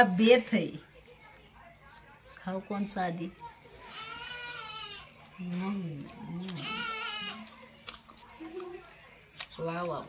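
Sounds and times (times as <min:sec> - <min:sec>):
goat bleating: 0:03.8 - 0:05.1, 0:06.5 - 0:07.5.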